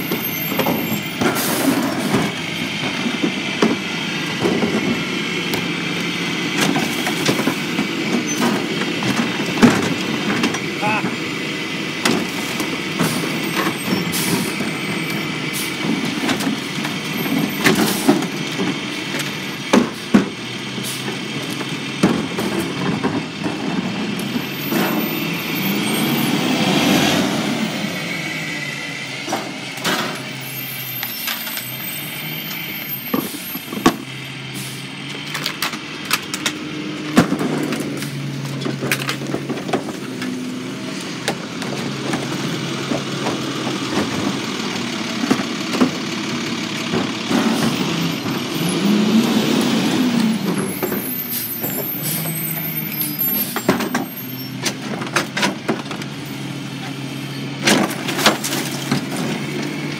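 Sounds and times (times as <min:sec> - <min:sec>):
garbage carts banging on hopper: 0:00.0 - 0:11.3, 0:11.9 - 0:27.7, 0:35.4 - 0:59.9
garbage truck engine running: 0:00.0 - 0:59.9.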